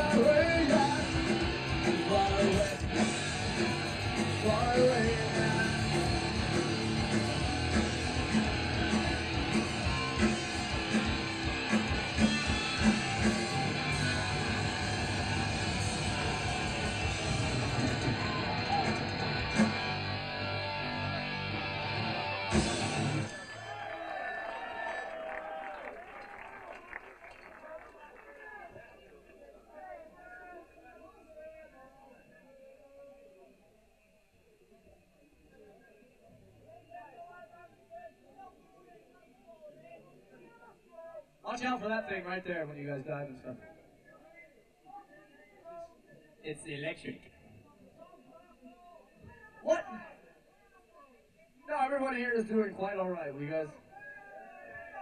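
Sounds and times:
punk rock band playing live: 0:00.0 - 0:23.3
crowd voices: 0:00.0 - 0:41.4.

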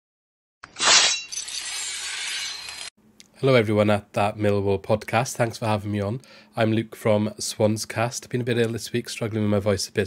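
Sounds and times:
glass shattering: 0:00.7 - 0:02.9.

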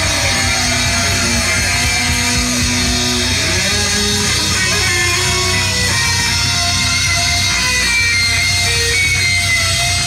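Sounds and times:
bass and drums: 0:00.0 - 0:10.0
electric guitar lead with bent notes: 0:00.0 - 0:10.0.

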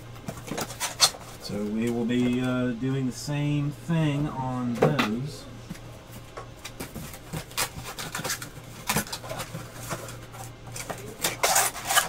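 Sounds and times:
foil wrappers and cards crinkling: 0:06.6 - 0:12.0.

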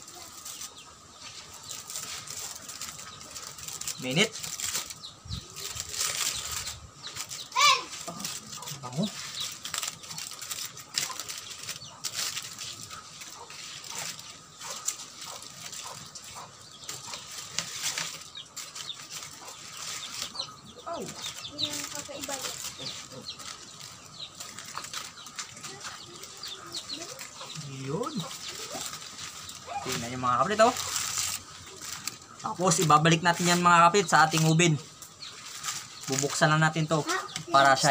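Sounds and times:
aluminium foil crinkling: 0:00.0 - 0:37.9.

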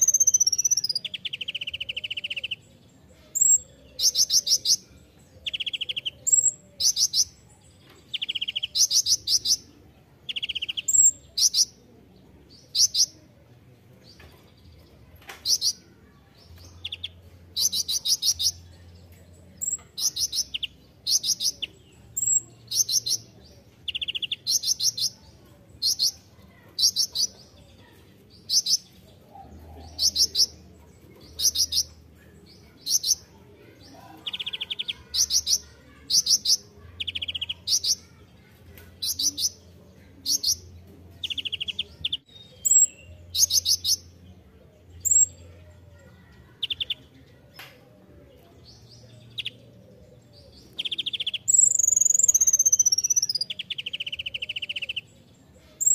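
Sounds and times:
bird high trilled chirps: 0:00.0 - 0:02.6, 0:50.8 - 0:55.1.

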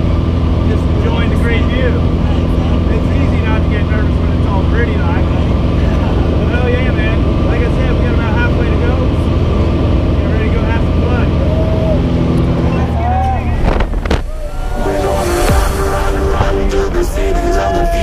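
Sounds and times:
plane engine droning: 0:00.0 - 0:18.0
people talking: 0:00.6 - 0:11.9, 0:16.4 - 0:18.0.

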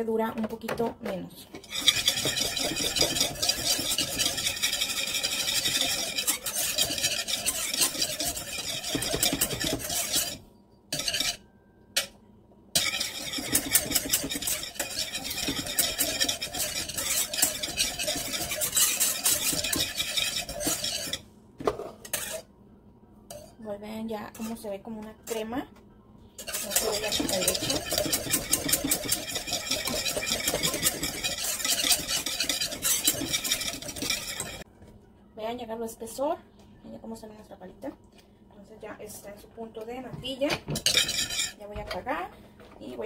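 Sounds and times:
whisk beating in a saucepan: 0:01.6 - 0:10.4, 0:11.0 - 0:11.4, 0:12.8 - 0:21.2, 0:22.1 - 0:22.4, 0:26.4 - 0:34.6, 0:40.7 - 0:41.6.

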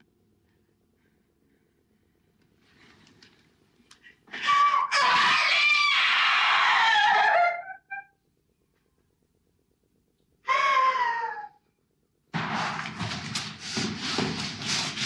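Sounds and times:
woman screaming: 0:04.4 - 0:08.0, 0:10.5 - 0:11.6.

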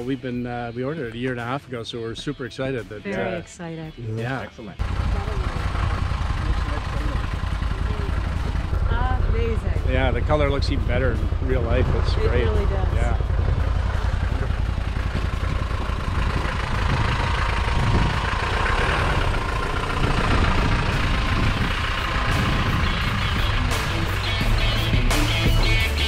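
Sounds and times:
background music: 0:00.0 - 0:07.3, 0:07.9 - 0:15.4, 0:21.4 - 0:26.0
vehicle engine rumbling: 0:00.0 - 0:26.0.

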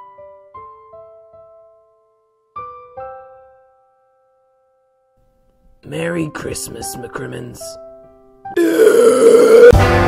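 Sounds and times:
loud drawn-out burp: 0:08.6 - 0:09.8.

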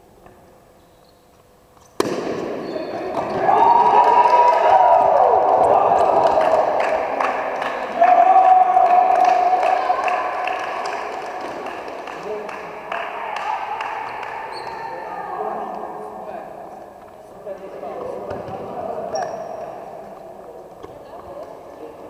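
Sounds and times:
bat cracking against ball: 0:02.0 - 0:02.6
players shouting and cheering: 0:02.8 - 0:11.5.

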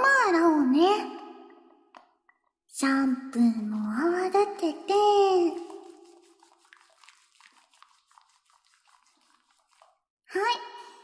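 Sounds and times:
soapy scrubbing crackles: 0:05.2 - 0:10.1
water dripping: 0:05.2 - 0:10.1.

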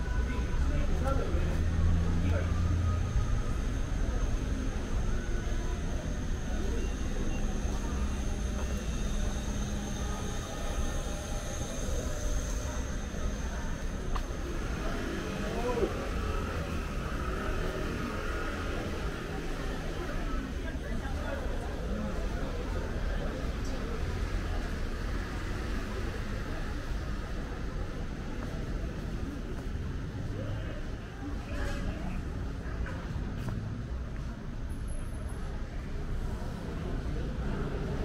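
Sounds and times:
distant voices: 0:00.0 - 0:38.0
traffic rumble: 0:00.0 - 0:38.0
faint high whine: 0:02.6 - 0:16.2.

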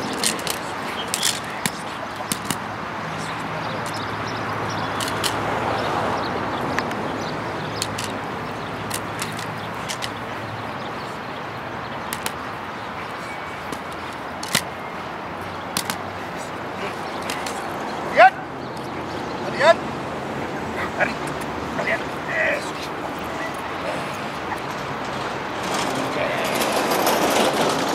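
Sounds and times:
sharp clicks and slaps: 0:00.0 - 0:04.0, 0:04.9 - 0:05.4, 0:07.7 - 0:08.2, 0:08.8 - 0:10.3, 0:12.0 - 0:12.5, 0:13.6 - 0:14.8, 0:15.7 - 0:17.8
dog scuffling: 0:08.8 - 0:10.3, 0:15.8 - 0:18.0.

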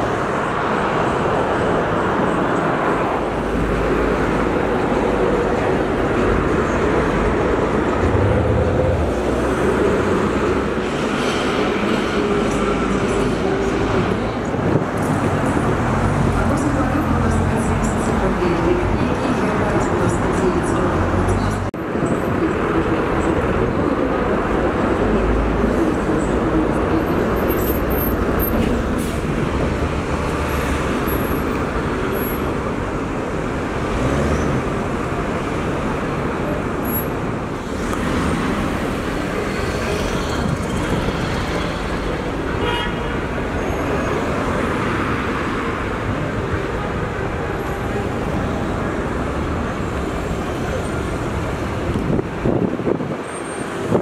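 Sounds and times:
city traffic: 0:00.0 - 0:54.0.

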